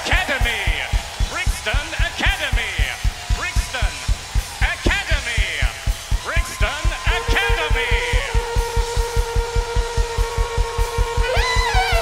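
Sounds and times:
fast kick drum beat: 0.0 - 12.0
live band playing: 0.0 - 12.0.

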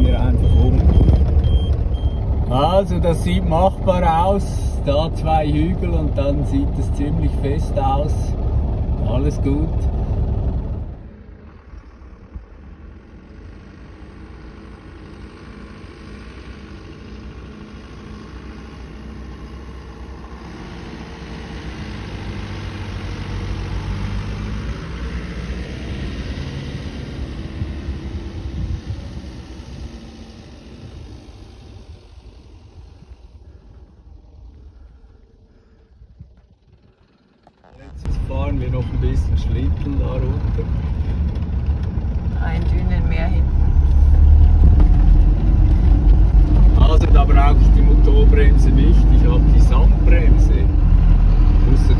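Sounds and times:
truck diesel engine: 0.0 - 51.9.

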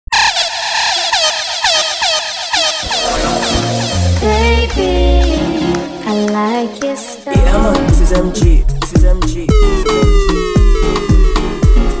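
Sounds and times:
downward sweeping tone effect: 2.7 - 6.0
bass line and beat: 2.8 - 6.2, 7.3 - 12.0.

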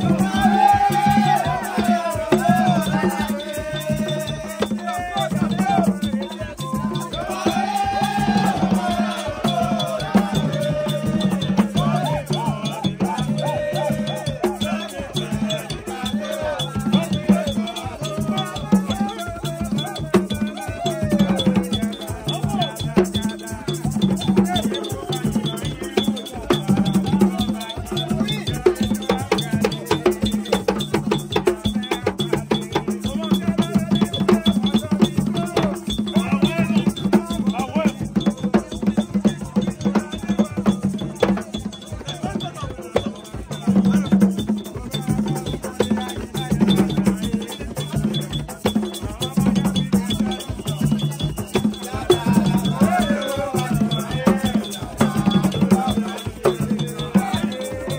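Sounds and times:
hand drums beating: 0.0 - 57.9
voices singing: 0.0 - 57.9.

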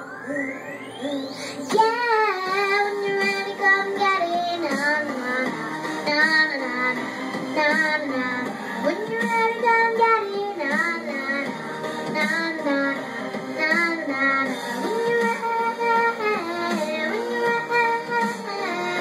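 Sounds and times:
pop backing track: 0.0 - 19.0
girl singing karaoke: 0.2 - 19.0.

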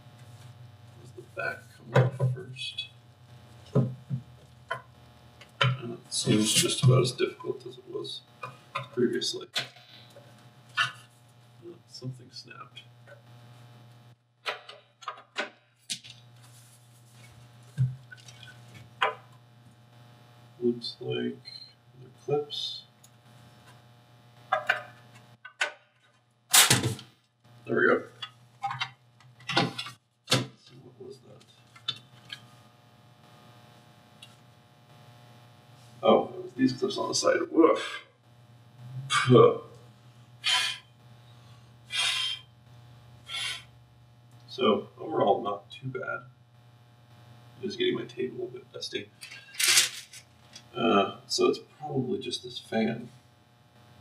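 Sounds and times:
puffs of breath blowing: 40.4 - 42.5.

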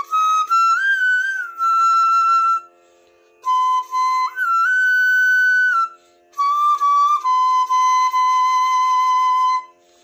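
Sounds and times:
bamboo flute playing held notes: 0.0 - 10.0.

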